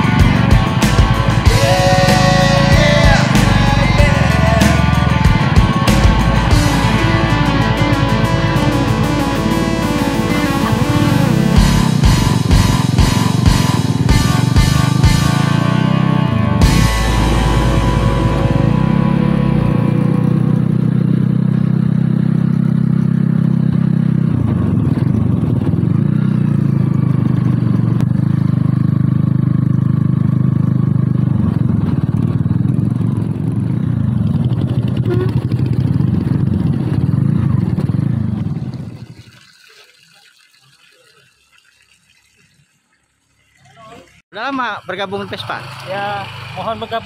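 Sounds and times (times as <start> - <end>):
motorcycle engine running: 0.0 - 39.0, 44.6 - 47.0.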